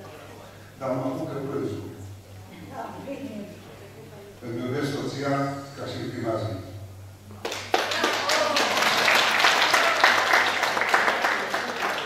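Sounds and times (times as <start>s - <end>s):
audience applauding: 7.4s - 12.0s.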